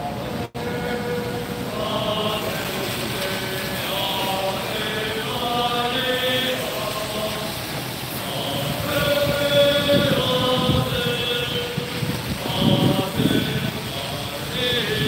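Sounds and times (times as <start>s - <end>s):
car tyres hissing on wet street: 0.0s - 15.0s
group of people singing: 0.1s - 15.0s.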